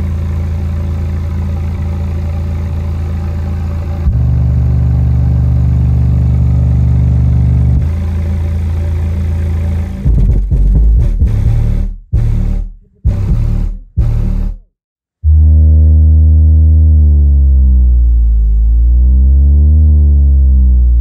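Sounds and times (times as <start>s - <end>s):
subwoofer playing low bass notes: 0.0s - 21.0s.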